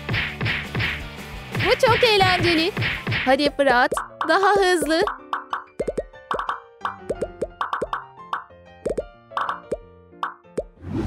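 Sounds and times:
background music: 0.0 - 11.0
fidget toy bubbles popping: 3.9 - 10.7.

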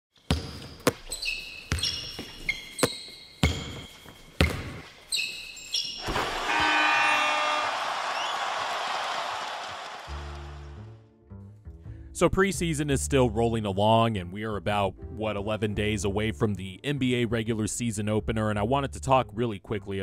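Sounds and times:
basketball bouncing: 0.3 - 5.0
short high tones ringing: 6.4 - 7.8.

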